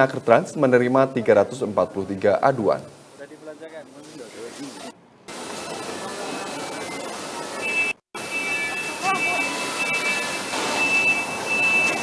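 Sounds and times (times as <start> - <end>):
high machine whine: 4.8 - 12.0.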